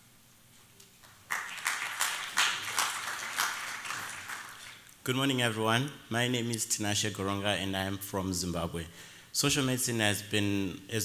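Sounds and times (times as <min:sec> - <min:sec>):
audience applauding: 0:01.0 - 0:04.8.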